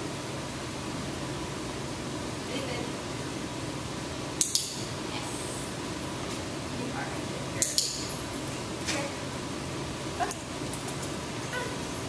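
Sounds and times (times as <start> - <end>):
light clinks: 10.2 - 12.0
dog whimpering: 11.5 - 11.9.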